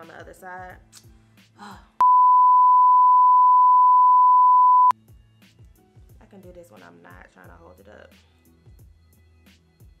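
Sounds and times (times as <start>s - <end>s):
steady test tone beep: 2.0s - 4.9s.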